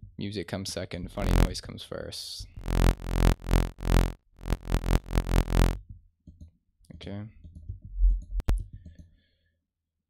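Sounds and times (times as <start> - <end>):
buzzy synth bass notes: 1.2 - 1.5, 2.6 - 5.8
deep sub-bass: 1.2 - 1.5, 2.6 - 5.8.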